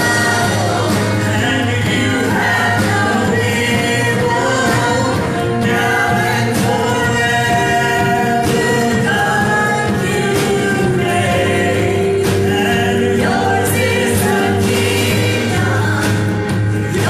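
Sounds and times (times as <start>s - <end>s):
drums: 0.0s - 17.0s
keyboard: 0.0s - 17.0s
singers in harmony: 0.0s - 17.0s.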